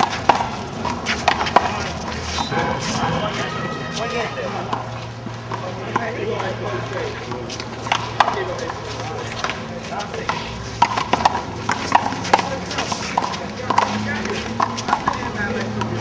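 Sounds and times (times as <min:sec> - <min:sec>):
voices talking: 0:00.0 - 0:16.0.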